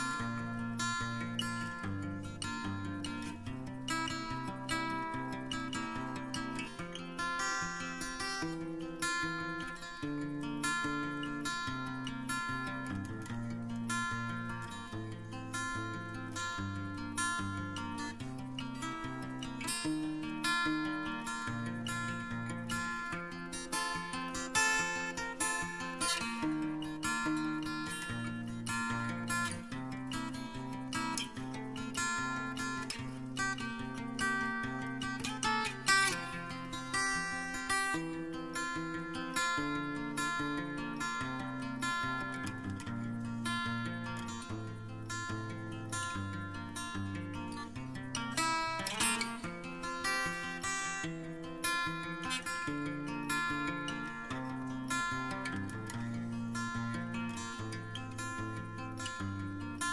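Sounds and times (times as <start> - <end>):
acoustic guitar music: 0.0 - 59.9.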